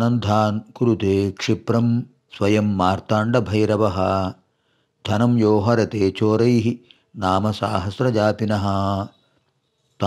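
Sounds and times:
man chanting verses: 0.0s - 4.4s, 5.0s - 9.2s.

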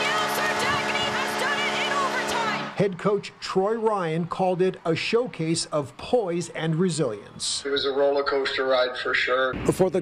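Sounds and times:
arena goal horn blaring: 0.0s - 2.8s.

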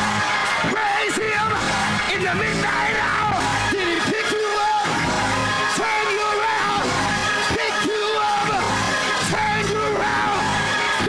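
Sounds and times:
slowed gospel music: 0.0s - 11.0s
man singing lead vocal: 0.6s - 11.0s.

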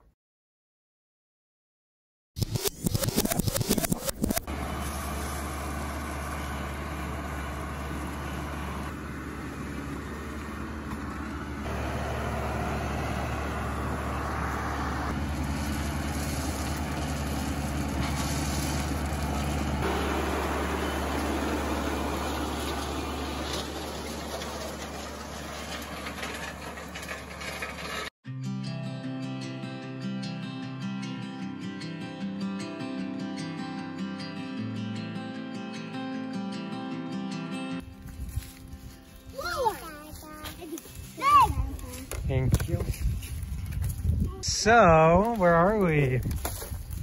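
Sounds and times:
tractor engine running: 2.5s - 28.1s, 37.8s - 47.0s
acoustic guitar music: 28.2s - 42.1s.

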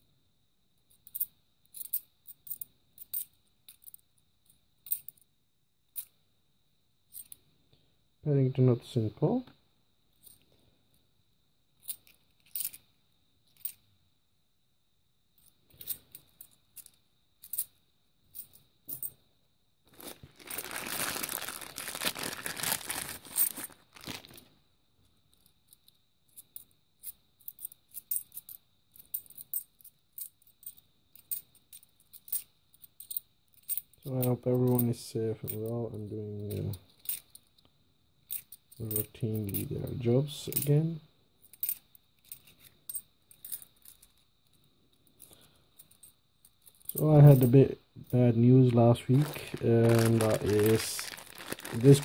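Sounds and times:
coins clicking: 11.8s - 12.8s, 25.4s - 34.0s, 51.7s - 52.0s
coin bag tearing open: 19.9s - 24.5s, 49.0s - 52.0s.

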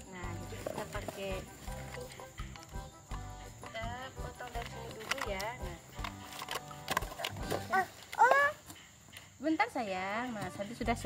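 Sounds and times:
child's high-pitched vocal call: 7.7s - 8.6s.

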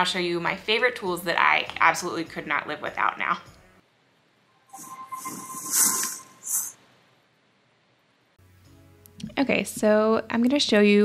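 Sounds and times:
airy whoosh: 4.7s - 6.8s
thin held tone: 4.7s - 6.8s.

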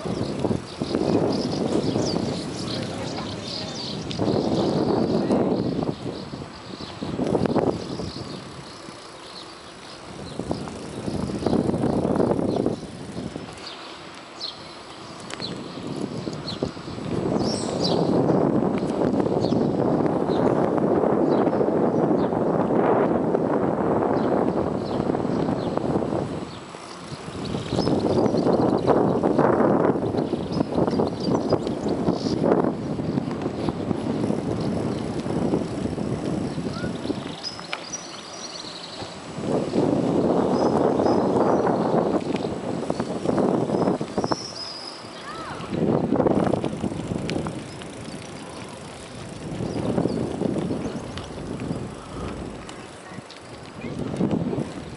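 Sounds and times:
bicycle rattling over pavement: 0.0s - 54.9s.

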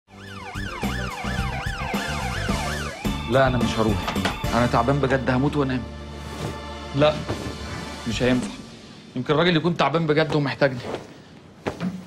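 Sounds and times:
electronic siren rising and falling: 0.1s - 3.4s.

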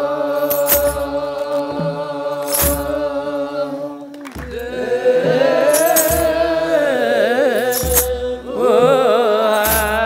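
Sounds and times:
clergy chanting in unison: 0.0s - 10.0s
drum beat: 4.2s - 7.0s, 7.6s - 10.0s
sistrum jingle: 4.5s - 6.7s, 7.6s - 8.2s.

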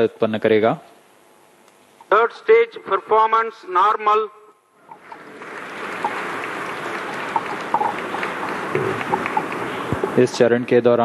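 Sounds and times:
hiss-like room noise: 0.0s - 11.0s.

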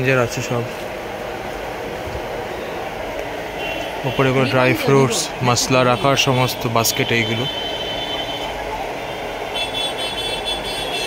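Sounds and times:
road traffic rumble: 0.0s - 11.0s
street noise: 0.0s - 11.0s.

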